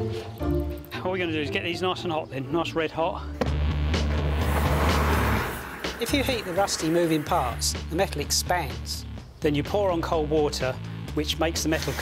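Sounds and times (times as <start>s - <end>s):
gas torch flame hissing: 4.3s - 7.7s.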